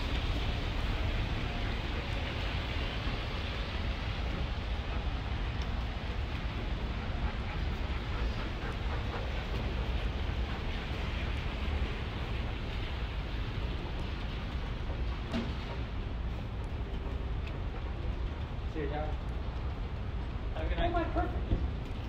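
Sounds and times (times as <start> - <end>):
heavy low outdoor rumble: 0.0 - 22.0.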